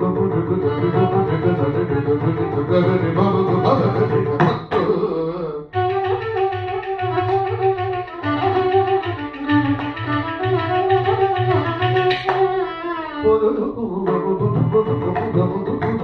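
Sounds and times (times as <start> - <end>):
violin melody with slides: 0.0 - 4.5, 5.8 - 16.0.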